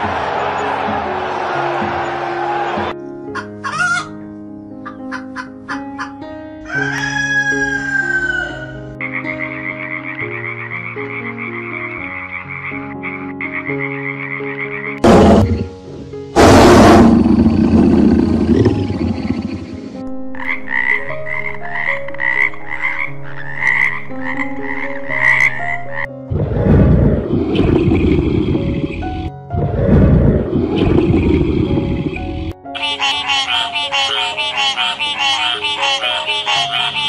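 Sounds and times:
plucked background music: 0.0s - 37.0s
rooster crowing: 6.6s - 8.8s.

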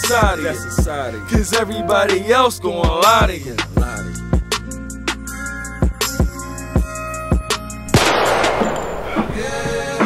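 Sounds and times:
music beat: 5.8s - 10.0s
gunshot with echo: 7.9s - 9.4s.

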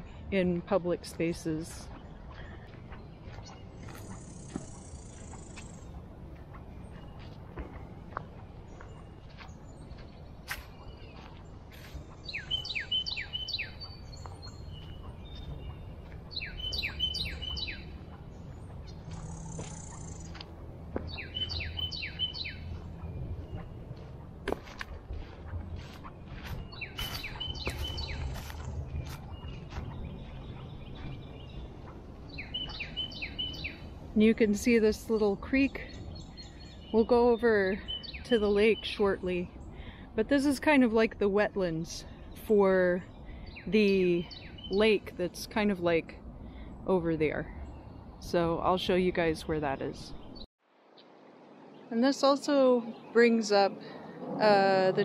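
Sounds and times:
songbird singing: 0.0s - 55.0s
low rumble: 1.2s - 34.9s
footsteps on dry leaves: 1.7s - 32.9s.

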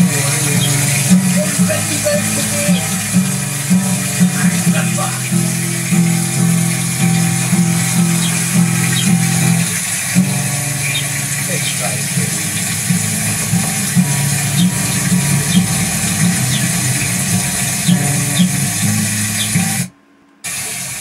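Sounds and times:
acoustic guitar through speakers: 0.0s - 21.0s
steady hiss: 0.0s - 21.0s.

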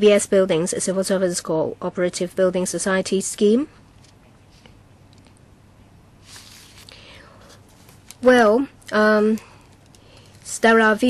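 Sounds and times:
faint room hum: 0.0s - 11.0s
soft breath into microphone: 6.2s - 7.7s.

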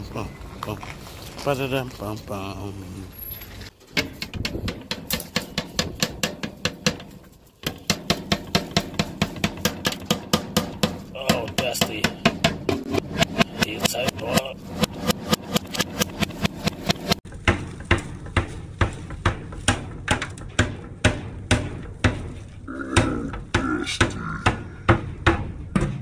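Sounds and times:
plastic canister knocking on metal: 4.0s - 18.4s.

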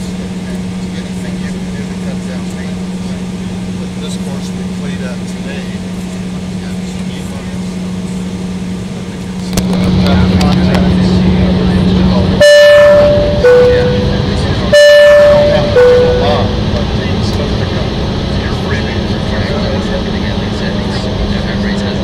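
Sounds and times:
jet cabin hum: 0.0s - 22.0s
two-tone high-low chime: 12.4s - 16.7s.

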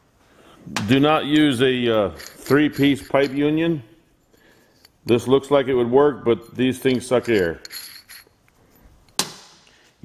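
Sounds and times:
metal pipe fitting clanking on bench: 1.8s - 3.6s, 6.5s - 8.3s.

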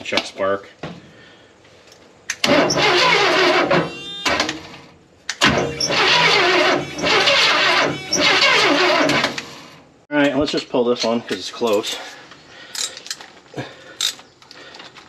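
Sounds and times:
engine cranking on starter: 2.4s - 4.8s, 5.4s - 9.9s.

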